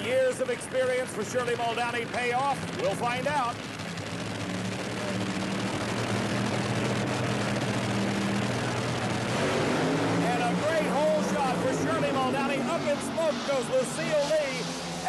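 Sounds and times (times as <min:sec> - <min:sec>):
dragster engines droning: 0:00.0 - 0:15.0.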